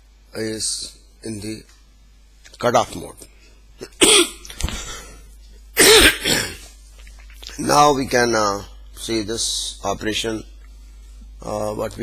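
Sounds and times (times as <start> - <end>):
man coughing: 3.8 - 4.5, 5.8 - 6.7.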